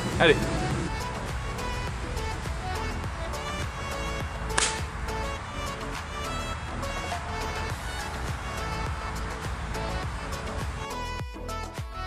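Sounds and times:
background music: 0.0s - 12.0s
golf club striking ball: 4.5s - 5.0s.

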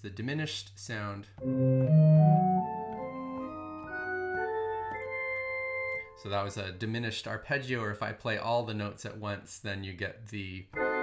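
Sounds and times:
organ-like keyboard arpeggio: 1.4s - 6.4s, 10.7s - 11.0s.

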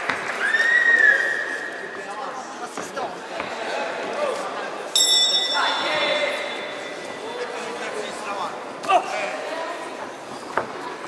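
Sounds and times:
voices in a hall: 0.0s - 11.0s
boxing ring bell ringing: 5.0s - 7.2s.

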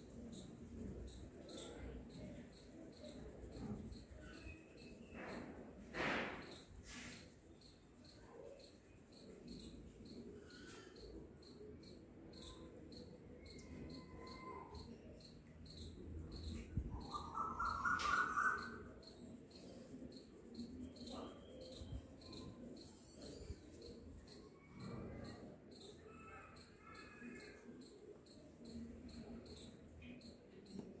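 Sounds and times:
cricket chirping: 0.0s - 31.0s.

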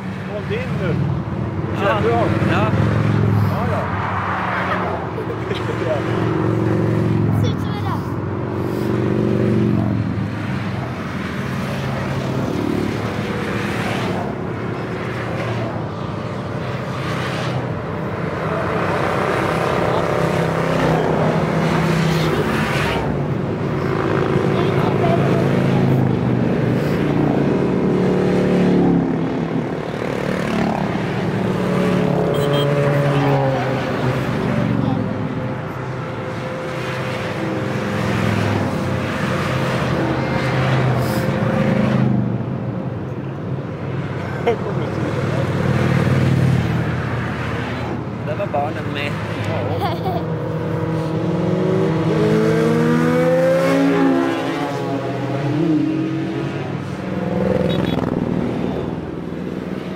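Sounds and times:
motorcycles passing by: 0.0s - 59.9s.

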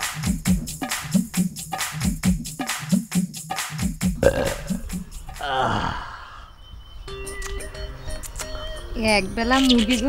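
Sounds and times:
man sighing: 5.4s - 6.6s.

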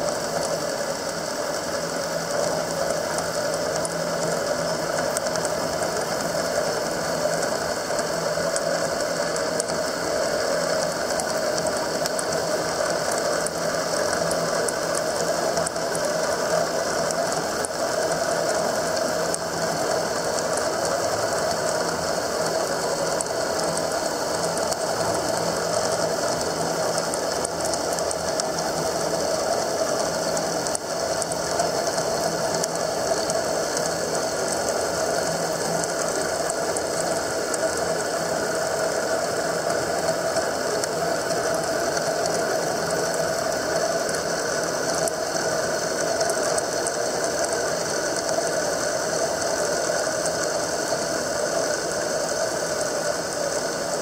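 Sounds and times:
faint ticks: 0.0s - 54.0s.

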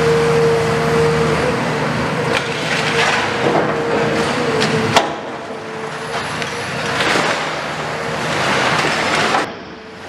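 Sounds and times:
diesel engine drone: 0.0s - 10.0s.

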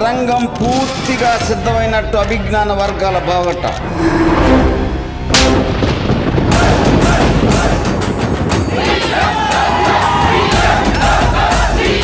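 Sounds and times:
film music: 0.0s - 12.0s
cinematic impact hits: 3.8s - 7.6s.

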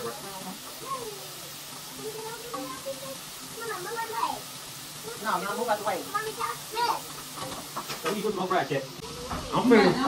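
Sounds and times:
hot oil sizzling: 0.0s - 10.0s
quiet voices talking: 0.0s - 10.0s.

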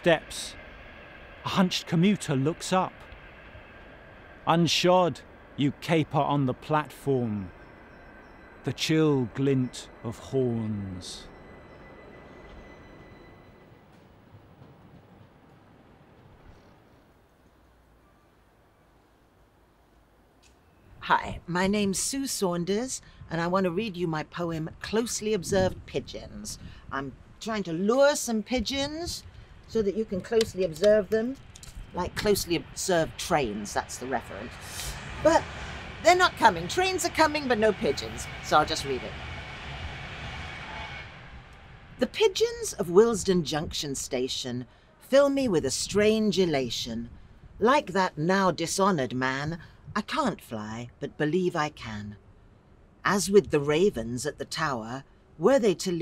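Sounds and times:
faint low outdoor rumble: 0.0s - 56.0s.

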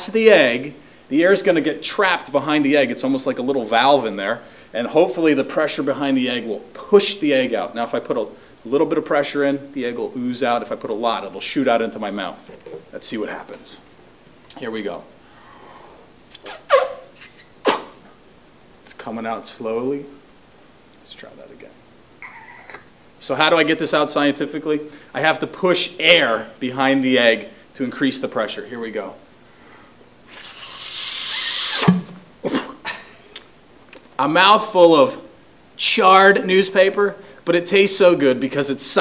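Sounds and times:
breath rushing: 15.2s - 16.6s
forceful puffs into glass bottle: 16.4s - 17.9s, 30.3s - 32.7s.

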